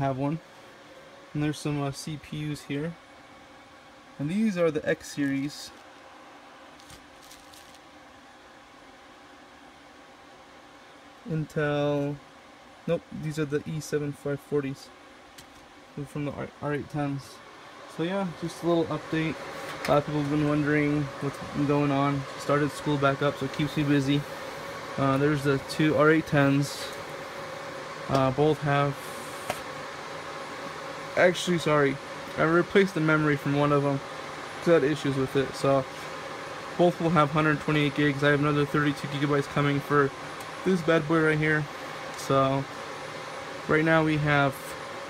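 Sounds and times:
server cooling fans whirring: 0.0s - 45.0s
light rustle of bubble wrap: 6.7s - 7.9s.

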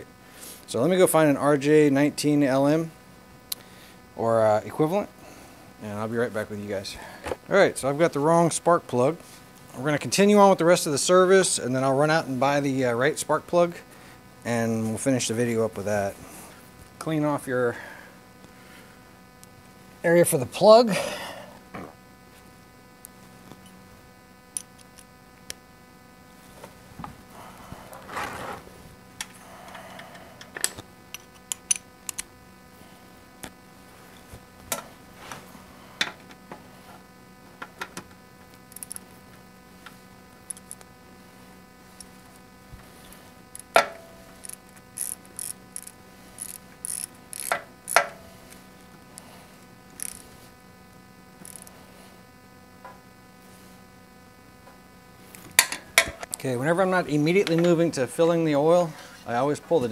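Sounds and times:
steady electrical hum: 0.0s - 59.9s
hand tools clicking and tapping: 47.4s - 48.2s.

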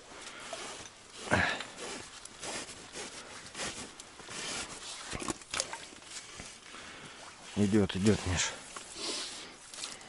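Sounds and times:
hands handling wet fishing line: 7.3s - 10.0s.

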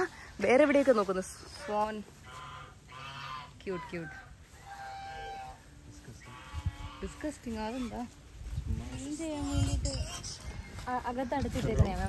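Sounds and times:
geese honking: 0.0s - 11.3s.

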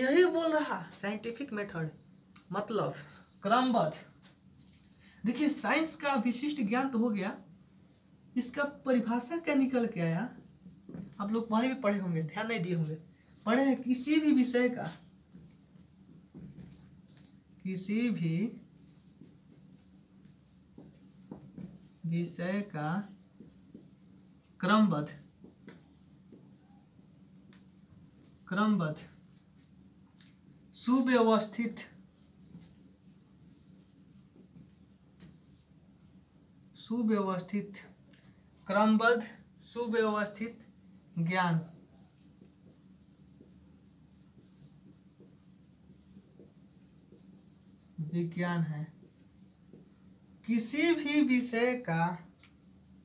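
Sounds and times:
marker pen writing on whiteboard: 9.6s - 29.8s, 31.4s - 36.8s, 40.3s - 51.0s.

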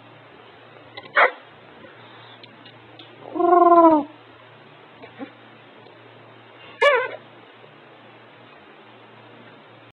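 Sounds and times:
parrot drawn-out call: 6.8s - 7.2s
parrot squeak: 6.8s - 7.2s.

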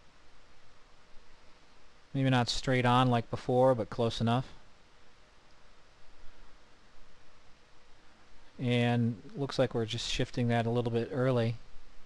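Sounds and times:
faint hum: 0.0s - 12.0s
low steady hiss: 0.0s - 12.0s.

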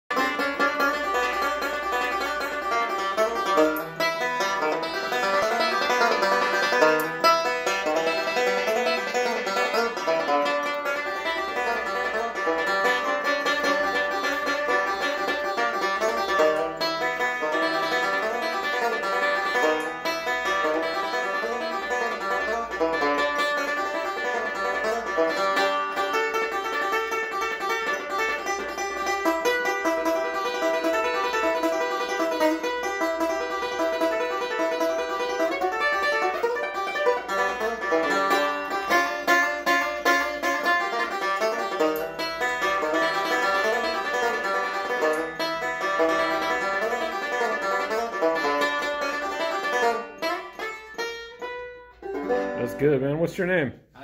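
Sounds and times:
fingerpicked banjo: 0.0s - 53.3s.

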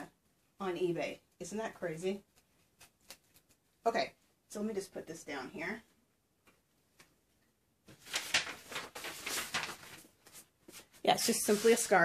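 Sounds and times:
fabric scarf rustling on table: 7.9s - 12.0s.

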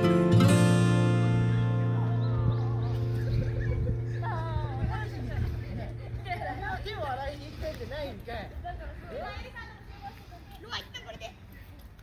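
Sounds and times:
people and children talking: 1.8s - 12.0s.

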